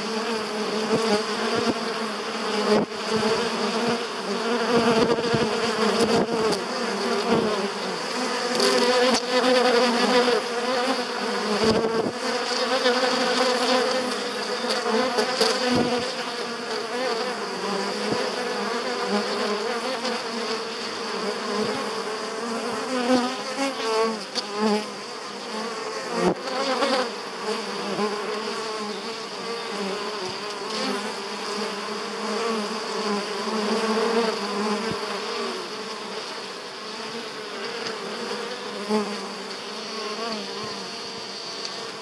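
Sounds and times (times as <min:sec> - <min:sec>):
honeybees buzzing: 0:00.0 - 0:42.0.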